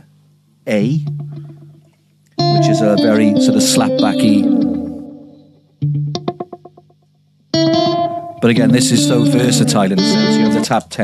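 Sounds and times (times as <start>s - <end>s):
electric guitar with slapback echo: 1.0s - 11.0s.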